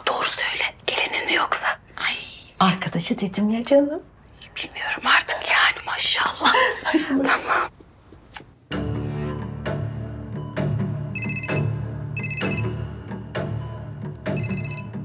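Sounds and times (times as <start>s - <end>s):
low drone drama music: 8.7s - 15.0s
mobile phone ringing: 10.5s - 15.0s.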